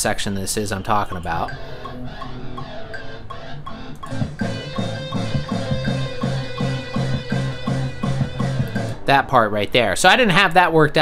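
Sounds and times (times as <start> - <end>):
bass guitar: 1.4 - 9.1
electric guitar solo: 1.5 - 9.0.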